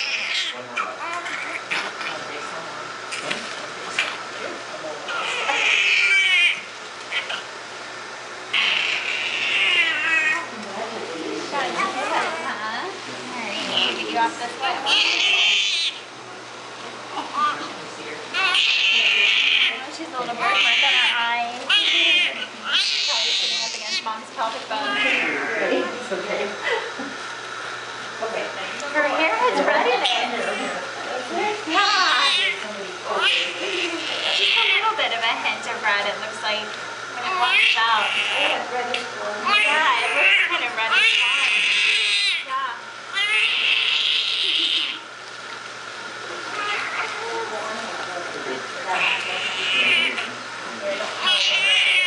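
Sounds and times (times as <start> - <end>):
newborn baby crying: 5.1 - 7.3, 8.6 - 10.5, 18.4 - 19.8, 39.4 - 42.4, 43.1 - 45.0.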